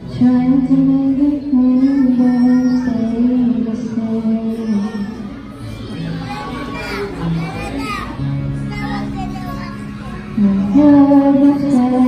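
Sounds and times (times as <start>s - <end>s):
girl singing into a microphone: 0.0s - 5.7s, 10.4s - 12.0s
backing track through speakers: 0.0s - 12.0s.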